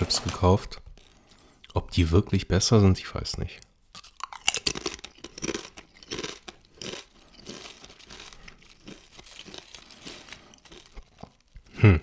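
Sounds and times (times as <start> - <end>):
tortilla chips being chewed: 0.8 - 1.8, 3.7 - 11.8
chips crackling in hand: 3.8 - 11.7.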